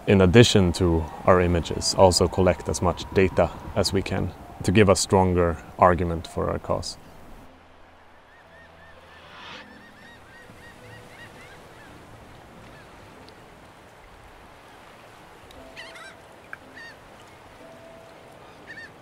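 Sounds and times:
birds honking: 0:15.7 - 0:17.2, 0:18.4 - 0:19.0.

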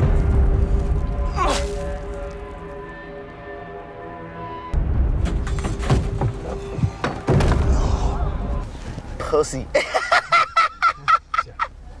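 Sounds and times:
man laughing: 0:09.7 - 0:11.8.

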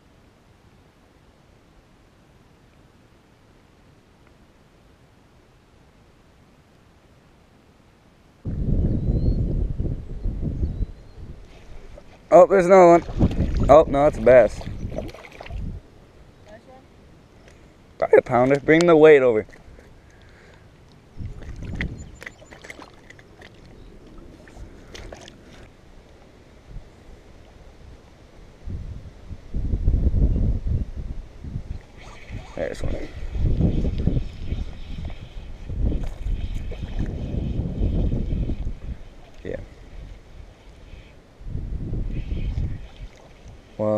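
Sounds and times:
wind buffeting microphone: 0:08.4 - 0:15.8, 0:21.1 - 0:22.5, 0:28.6 - 0:43.4.

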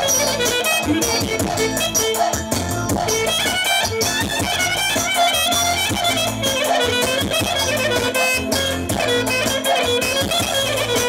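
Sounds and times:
loud dance music over loudspeakers: 0:00.0 - 0:11.0.

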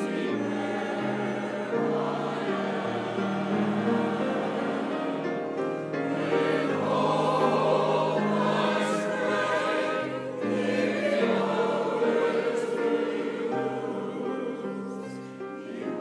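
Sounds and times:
mixed choir singing chords: 0:00.0 - 0:16.0.

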